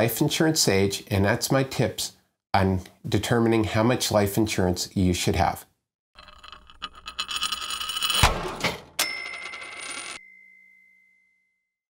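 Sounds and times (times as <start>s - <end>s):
coin-like clinks: 6.2s - 10.3s
bright ding: 10.2s - 11.7s.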